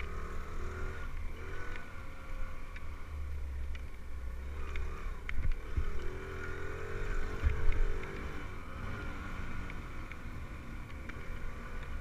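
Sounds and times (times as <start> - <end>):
dirt bike engine revving: 0.0 - 3.1, 4.4 - 12.0.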